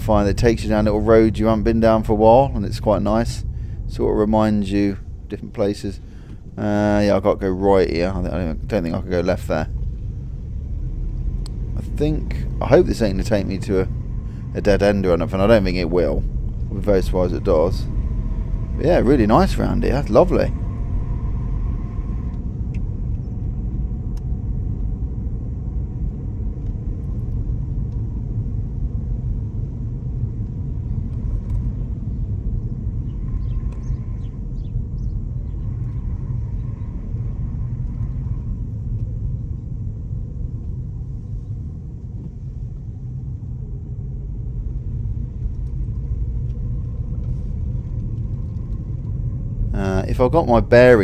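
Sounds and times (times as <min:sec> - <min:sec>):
car engine and tyre rumble: 0:00.0 - 0:51.0.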